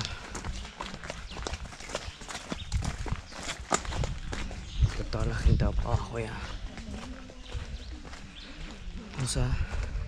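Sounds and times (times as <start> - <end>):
footsteps on wet dirt trail: 0.0 - 10.0.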